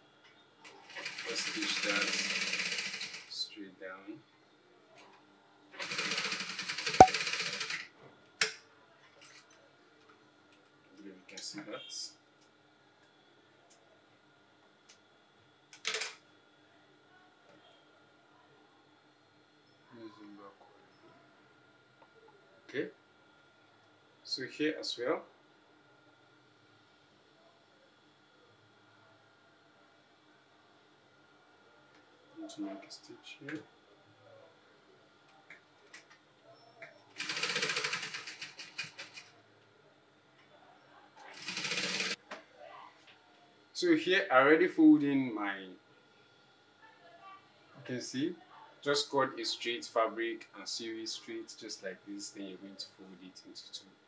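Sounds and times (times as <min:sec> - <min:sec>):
industrial sewing machine stitching: 0:00.9 - 0:03.3, 0:05.8 - 0:07.8, 0:37.2 - 0:39.2, 0:41.3 - 0:42.2.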